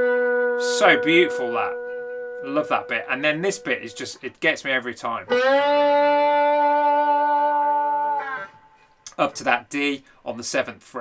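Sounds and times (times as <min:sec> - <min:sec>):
slide electric guitar note: 0:00.0 - 0:08.9.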